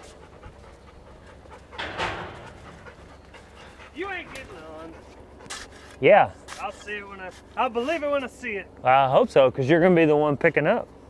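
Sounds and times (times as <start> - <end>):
dog panting: 0.0 - 6.0.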